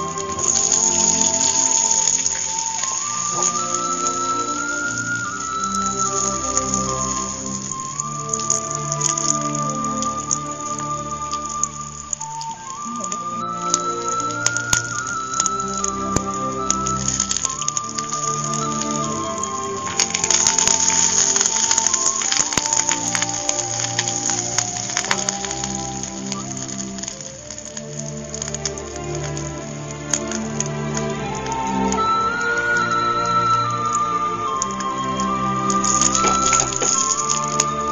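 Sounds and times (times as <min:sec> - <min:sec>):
onions frying in a pan: 0:00.0 - 0:13.0, 0:13.6 - 0:31.3
slow background music: 0:00.0 - 0:37.9.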